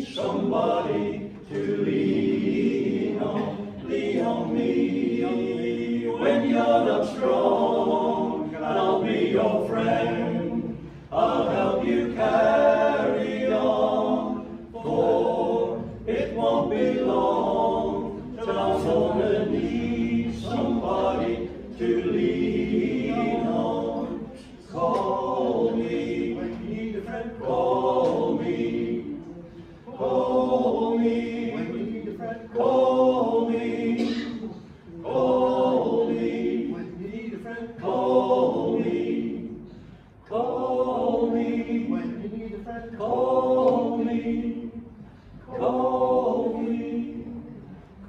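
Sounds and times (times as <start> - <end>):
men singing a cappella harmony: 0.0 - 47.8.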